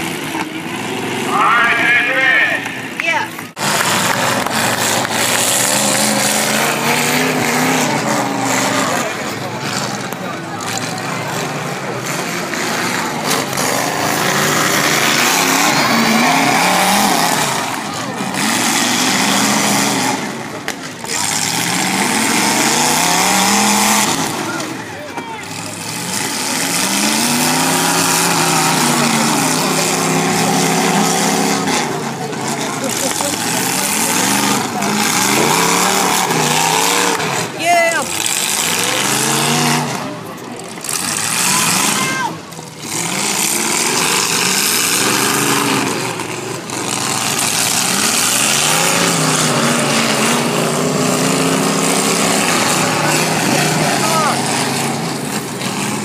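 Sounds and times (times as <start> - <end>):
car engines revving: 0.0 - 56.0
crowd noise: 0.0 - 56.0.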